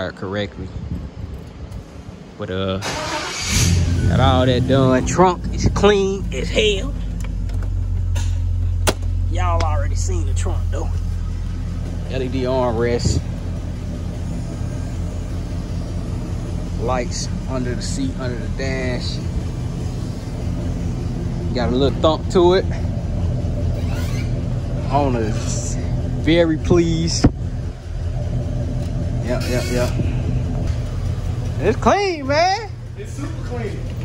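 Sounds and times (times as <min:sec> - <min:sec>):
car engine hum from inside: 0:02.8 - 0:34.0.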